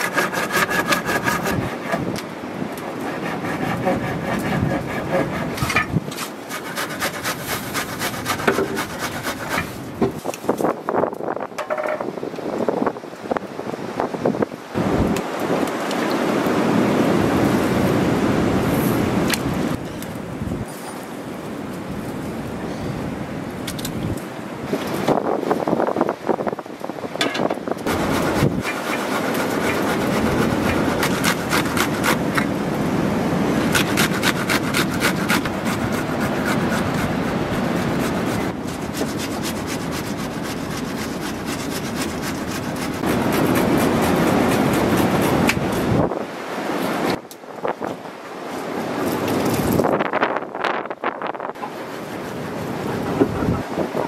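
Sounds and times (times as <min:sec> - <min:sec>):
food grated on metal grater: 0:06.4 - 0:09.8.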